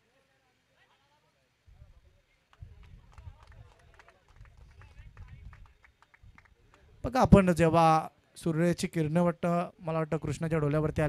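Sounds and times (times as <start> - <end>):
faint distant voices: 0.0 - 8.7.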